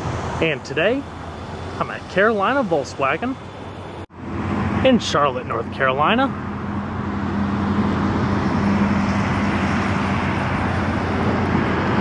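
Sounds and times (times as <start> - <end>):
vehicle traffic rumble: 0.0 - 12.0
low hum: 1.0 - 12.0.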